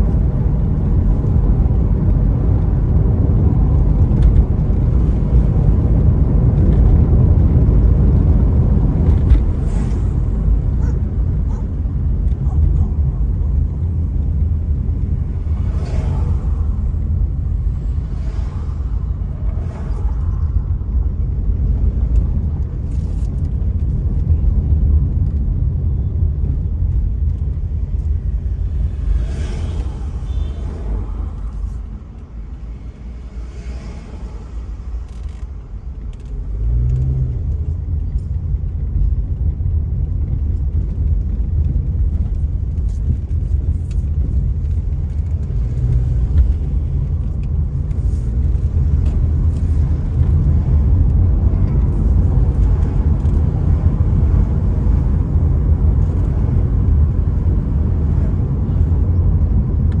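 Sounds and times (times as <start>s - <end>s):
car engine rumble: 0.0s - 60.0s
tyre noise on road: 0.0s - 60.0s.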